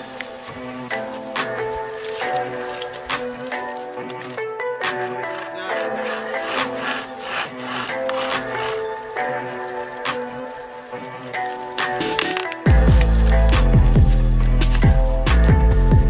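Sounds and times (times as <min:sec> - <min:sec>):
melodic music with deep bass: 0:00.0 - 0:16.0.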